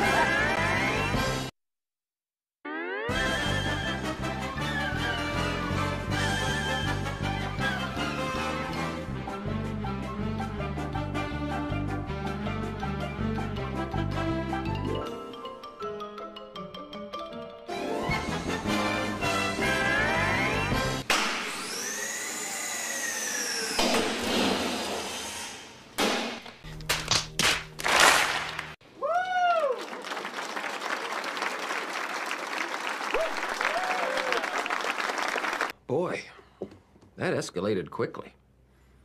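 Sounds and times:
music: 0:00.0 - 0:01.5, 0:02.7 - 0:21.1, 0:26.6 - 0:28.8
audience applauding: 0:27.5 - 0:28.8, 0:29.6 - 0:35.8.

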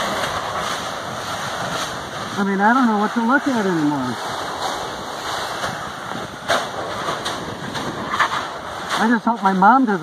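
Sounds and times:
steam venting hiss: 0:00.0 - 0:10.0
sharp pops: 0:04.2 - 0:09.3.

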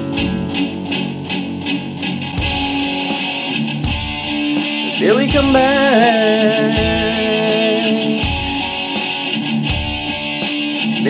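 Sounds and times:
electric guitar chords: 0:00.0 - 0:11.0
steady rock beat: 0:00.0 - 0:11.0.

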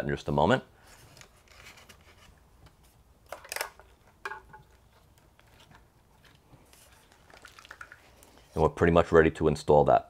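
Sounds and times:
cables rustling against plastic: 0:00.8 - 0:08.7.

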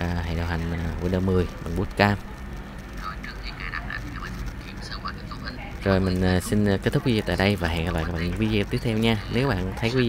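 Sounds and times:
faint voice from laptop speakers: 0:00.3 - 0:10.0.

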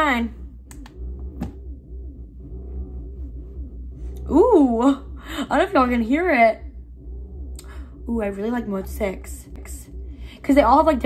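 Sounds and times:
massage chair motors humming: 0:00.0 - 0:11.0.

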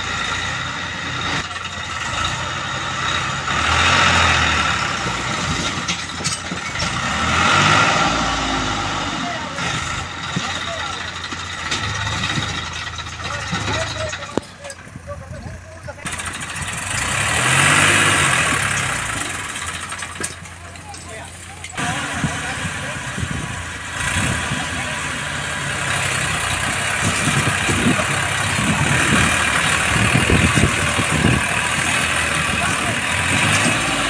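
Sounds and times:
tractor diesel engine running: 0:00.0 - 0:34.0.

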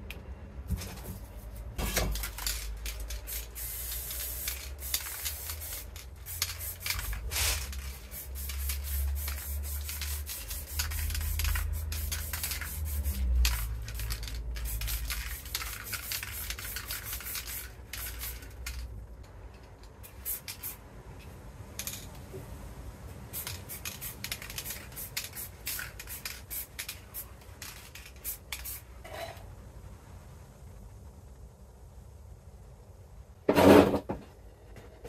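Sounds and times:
spray paint can hissing: 0:01.4 - 0:18.9, 0:20.0 - 0:20.8, 0:23.3 - 0:28.9.

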